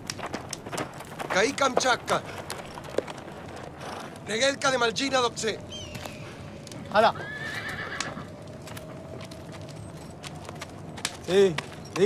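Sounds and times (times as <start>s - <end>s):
horse whinnying: 6.9s - 8.4s.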